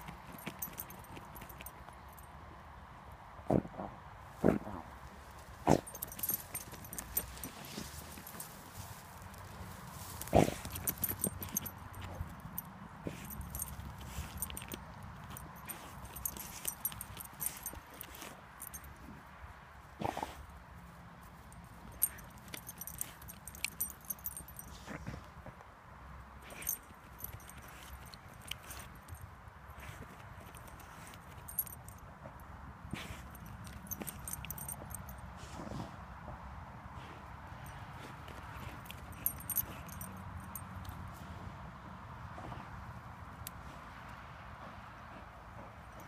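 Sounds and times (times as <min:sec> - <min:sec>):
harness jingling: 0:00.0 - 0:02.4, 0:05.0 - 0:25.1, 0:26.4 - 0:35.3, 0:37.6 - 0:41.4
scratching and rustling dry grass: 0:05.0 - 0:12.3
dog snorting: 0:10.2 - 0:12.2, 0:20.0 - 0:20.4.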